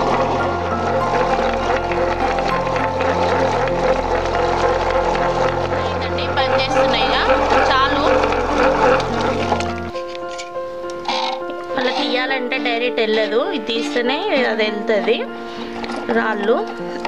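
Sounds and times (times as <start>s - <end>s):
wet grinder motor humming: 0.0s - 10.3s, 10.9s - 17.0s.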